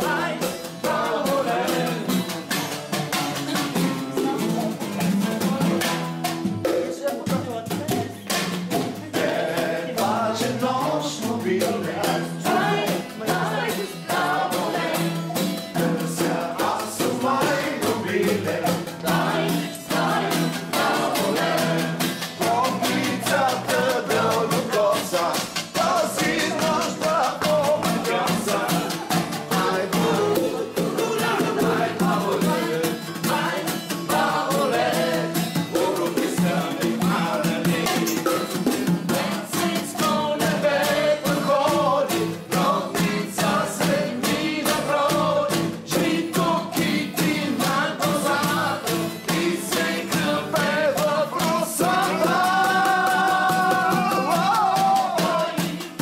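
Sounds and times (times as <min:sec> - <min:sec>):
voices singing folk song: 0:00.0 - 0:06.9, 0:08.1 - 0:56.0
acoustic guitar strumming: 0:00.0 - 0:56.0
drums beaten with sticks: 0:00.0 - 0:56.0.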